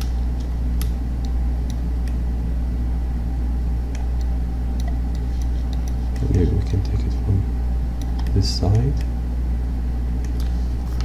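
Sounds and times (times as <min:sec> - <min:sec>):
low hum: 0:00.0 - 0:11.0
computer mouse clicks: 0:08.0 - 0:08.4.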